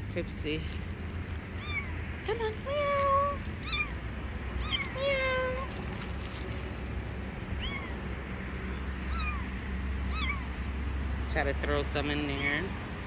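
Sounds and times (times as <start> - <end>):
kitten mewing: 1.6 - 4.0, 4.6 - 5.8, 7.5 - 8.1, 8.7 - 10.6.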